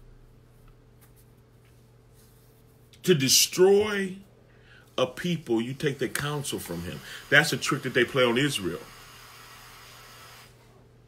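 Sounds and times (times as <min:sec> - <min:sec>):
faint room noise hiss: 0:00.0 - 0:11.0.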